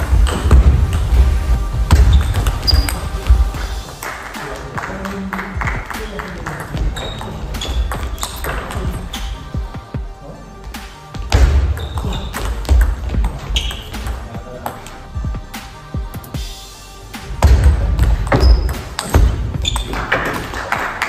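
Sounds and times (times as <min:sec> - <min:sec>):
music with heavy bass beat: 0:00.0 - 0:04.4, 0:15.2 - 0:19.6.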